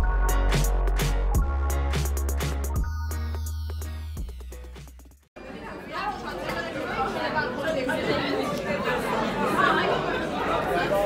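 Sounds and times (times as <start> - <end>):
chatter of many people: 5.4 - 11.0.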